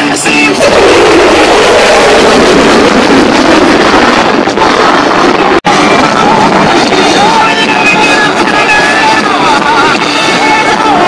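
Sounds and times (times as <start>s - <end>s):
jet engine roaring past: 0.6s - 8.4s.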